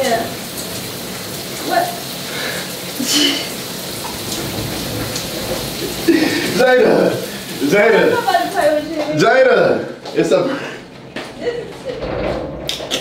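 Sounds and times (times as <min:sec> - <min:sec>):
shower spray running: 0:00.0 - 0:09.2.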